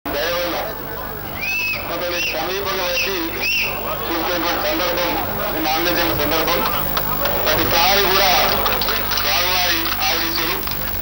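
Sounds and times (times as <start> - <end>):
man speaking over loudspeakers: 0.1 - 11.0.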